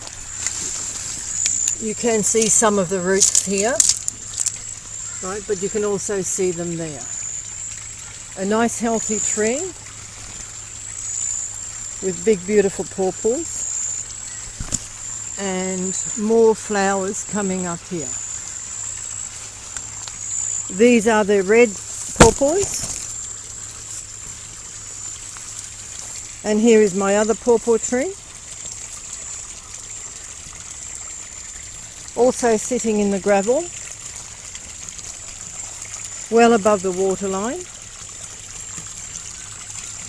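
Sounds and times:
insect high-pitched call: 0:00.0 - 0:33.9
water trickling through channel: 0:00.0 - 0:40.0.

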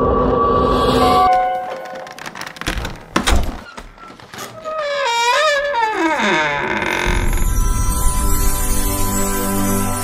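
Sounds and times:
wooden door creaking open: 0:01.3 - 0:07.9.

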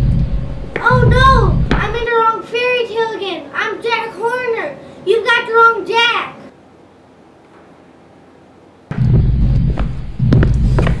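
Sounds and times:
music with heavy bass and sharp hits: 0:08.9 - 0:11.0.

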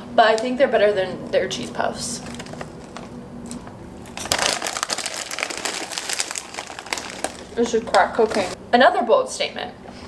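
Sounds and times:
plastic snack bag crinkling: 0:02.2 - 0:08.6.

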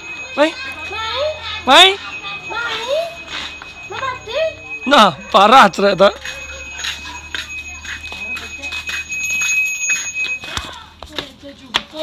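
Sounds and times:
bell ringing: 0:00.0 - 0:10.9.

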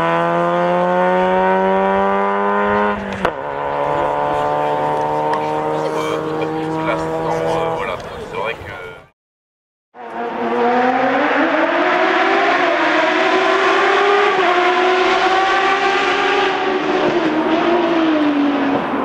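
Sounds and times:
racing car engine at high revs: 0:00.0 - 0:08.2, 0:10.0 - 0:19.0.

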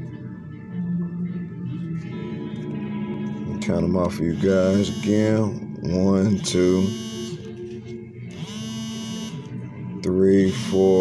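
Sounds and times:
music with sustained tones: 0:00.0 - 0:11.0.

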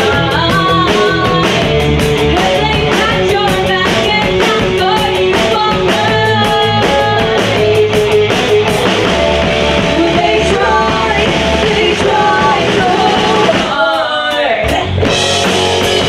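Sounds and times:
woman singing: 0:00.0 - 0:08.8, 0:09.8 - 0:15.2
bass guitar: 0:00.0 - 0:16.0
driving drum beat: 0:00.0 - 0:16.0
electric guitar: 0:00.0 - 0:16.0.

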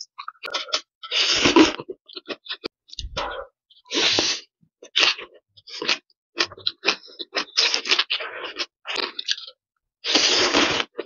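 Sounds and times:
noodles slurped: 0:10.0 - 0:11.0.

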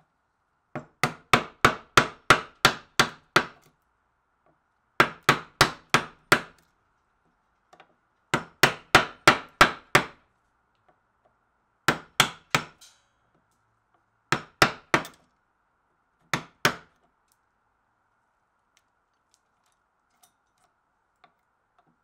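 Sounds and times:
chisel striking wood: 0:00.7 - 0:03.6, 0:05.0 - 0:06.6, 0:08.3 - 0:10.2, 0:11.9 - 0:12.8, 0:14.3 - 0:15.2, 0:16.3 - 0:16.9.

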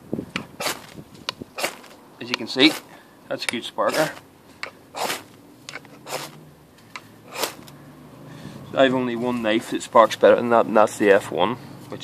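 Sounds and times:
fire steel rasping on knife: 0:03.9 - 0:04.2, 0:05.0 - 0:06.4, 0:07.3 - 0:07.7.

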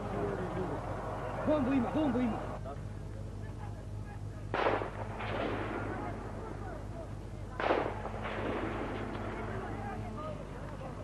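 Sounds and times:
steady low hum: 0:00.0 - 0:11.0
gunshots with rolling echo: 0:04.5 - 0:06.3, 0:07.6 - 0:09.3.

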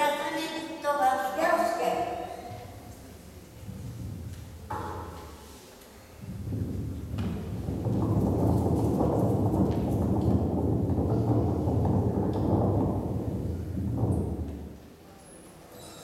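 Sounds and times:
low steady rumbling: 0:02.5 - 0:05.4, 0:06.2 - 0:14.8.

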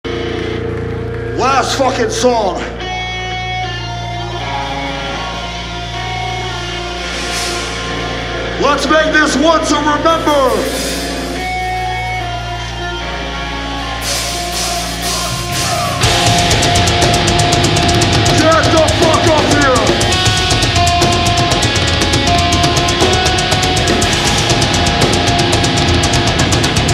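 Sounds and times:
ringing electric guitar notes: 0:00.1 - 0:26.9
steady low drone: 0:05.2 - 0:26.9
hissy swell: 0:06.6 - 0:08.6
fast drum hits: 0:14.2 - 0:26.9.

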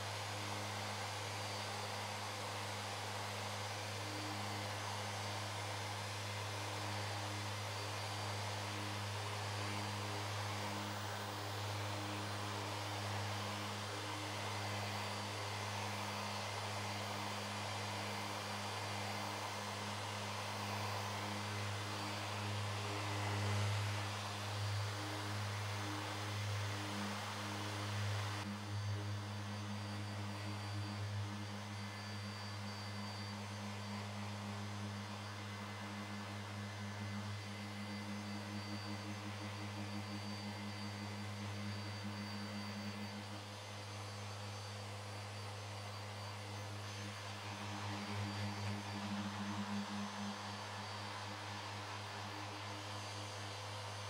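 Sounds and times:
orbital sander motor hum: 0:00.0 - 0:54.0.

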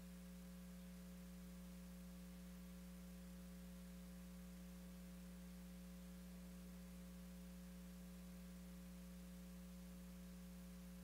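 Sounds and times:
faint hiss: 0:00.0 - 0:11.0
low electrical mains hum: 0:00.0 - 0:11.0.

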